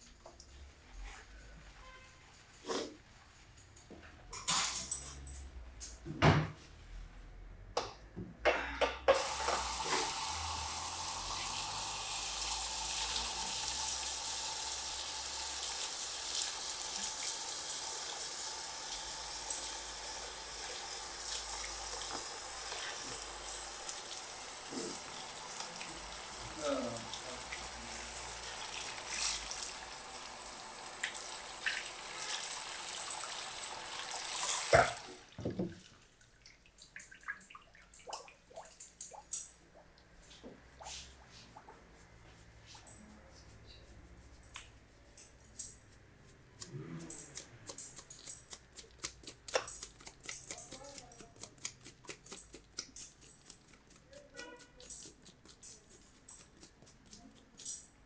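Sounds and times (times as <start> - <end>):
spray hose running water: 9.1 - 35.4.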